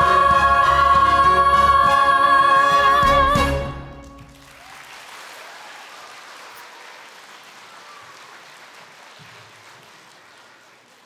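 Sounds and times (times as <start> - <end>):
audience applauding: 4.0 - 11.0.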